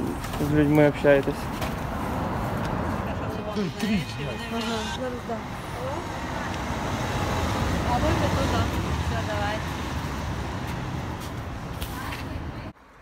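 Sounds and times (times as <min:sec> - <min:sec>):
street traffic rumble: 0:00.0 - 0:13.0.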